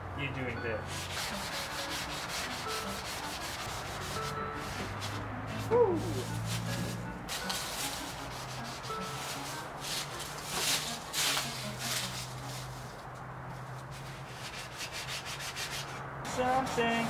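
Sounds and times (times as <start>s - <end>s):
sponge sanding wooden board: 0.9s - 12.4s, 13.9s - 17.0s.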